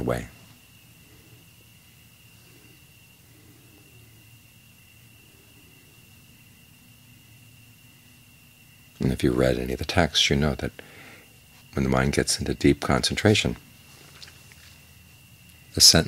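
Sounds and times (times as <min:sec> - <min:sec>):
even hiss: 0:00.0 - 0:16.0.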